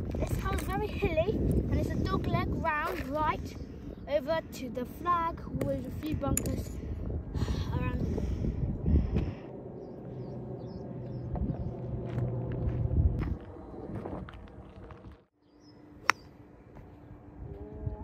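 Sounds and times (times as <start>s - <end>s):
outdoor low hum: 0.0s - 18.0s
golf club striking ball: 16.0s - 16.2s.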